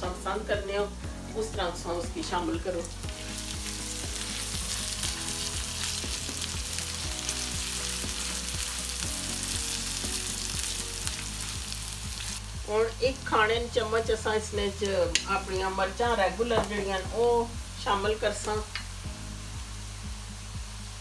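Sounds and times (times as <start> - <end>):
food sizzling in hot oil: 0.0 - 21.0.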